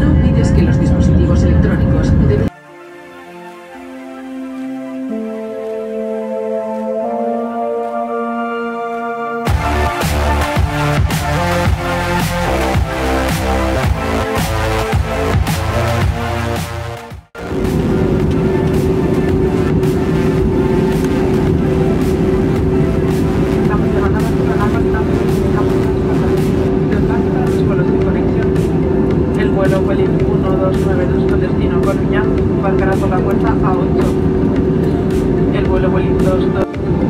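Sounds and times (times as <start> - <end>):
airplane cabin engine roar: 0.0 - 2.5, 17.3 - 37.0.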